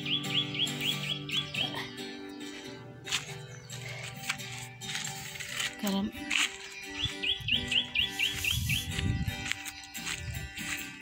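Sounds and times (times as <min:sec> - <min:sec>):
bird chirping: 0:00.0 - 0:11.0
guitar playing: 0:00.0 - 0:11.0.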